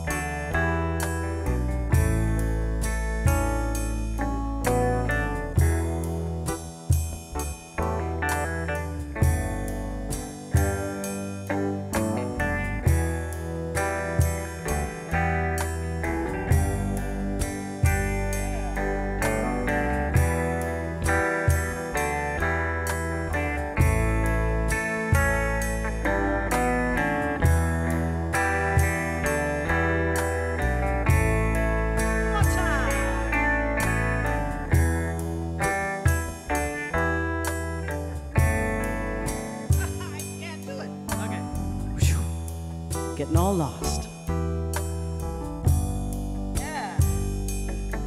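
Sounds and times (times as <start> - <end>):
deep bass notes: 0.0 - 48.0
electric guitar: 0.0 - 48.0.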